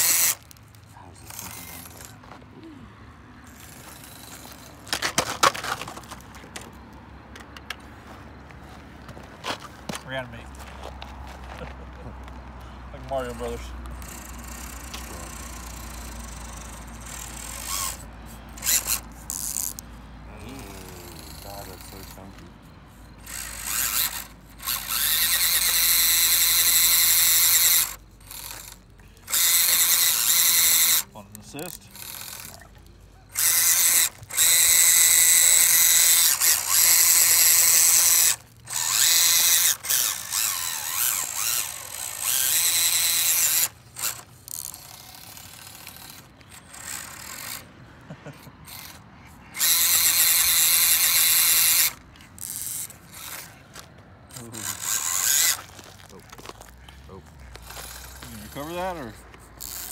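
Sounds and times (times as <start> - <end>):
small electric motors whining: 0.0 - 59.9.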